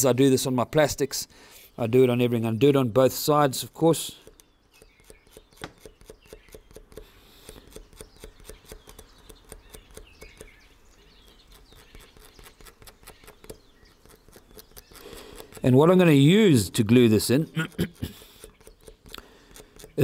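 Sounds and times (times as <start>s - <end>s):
blade scratching plastic: 4.2s - 20.0s.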